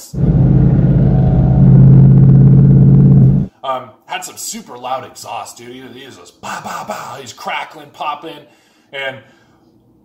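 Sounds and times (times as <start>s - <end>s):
loud car exhaust drone: 0.0s - 3.5s.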